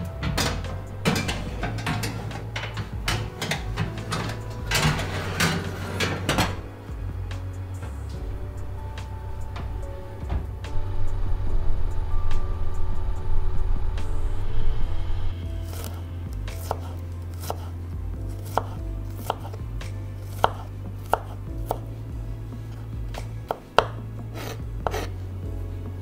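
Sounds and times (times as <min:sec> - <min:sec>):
background music: 0:00.0 - 0:26.0
knife chopping on wooden board: 0:15.7 - 0:17.7, 0:18.4 - 0:19.6, 0:20.2 - 0:21.9, 0:23.2 - 0:25.1.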